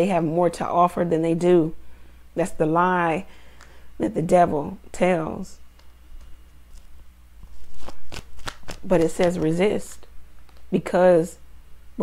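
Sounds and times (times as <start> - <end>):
cards shuffling and snapping: 5.8 - 10.7.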